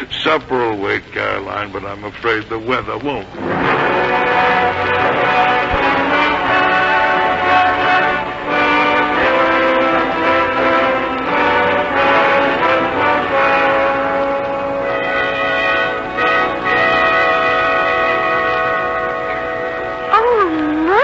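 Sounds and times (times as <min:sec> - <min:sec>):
orchestral brass chords: 0:03.4 - 0:20.4.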